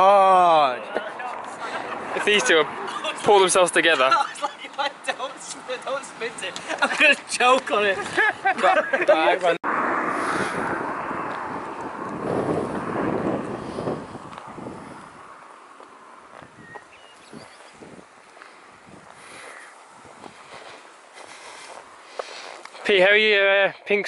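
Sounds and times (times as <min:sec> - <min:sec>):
loud rushing noise: 0:09.6 - 0:15.4.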